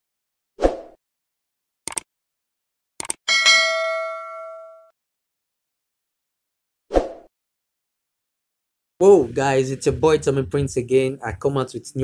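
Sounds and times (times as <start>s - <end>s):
notification bell ding: 3.3s - 4.9s.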